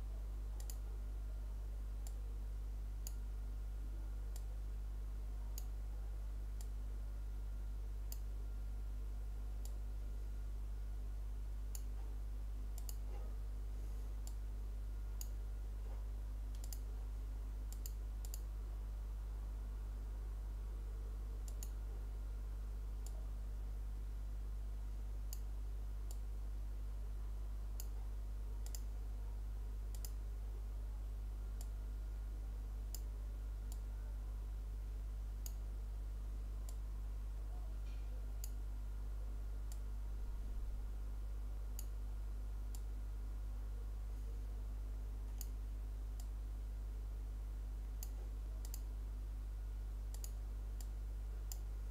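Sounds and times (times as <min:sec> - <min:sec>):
low electrical hum: 0:00.0 - 0:51.9
computer mouse clicking: 0:00.6 - 0:00.8, 0:08.1 - 0:08.3, 0:12.8 - 0:13.3, 0:16.5 - 0:16.9, 0:17.7 - 0:18.5, 0:21.4 - 0:21.8, 0:28.6 - 0:28.9, 0:29.9 - 0:30.2, 0:45.3 - 0:45.6, 0:48.0 - 0:48.9, 0:50.1 - 0:50.9.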